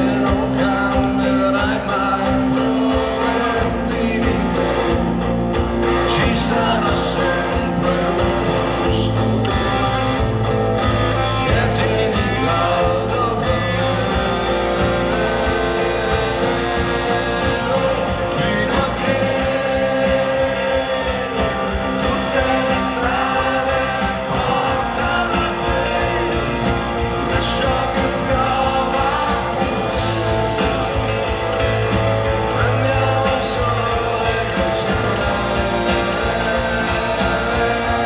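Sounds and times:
man singing: 0.0 - 10.3, 11.2 - 38.0
electric guitar: 0.0 - 38.0
upright double bass: 0.0 - 38.0.

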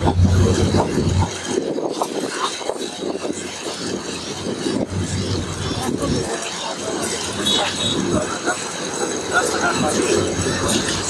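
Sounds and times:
low hum: 0.0 - 1.5
train wheels rattling on rails: 0.0 - 11.0.

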